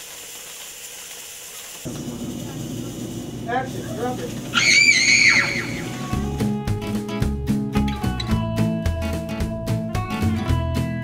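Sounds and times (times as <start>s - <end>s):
music with guitar: 5.8s - 11.0s.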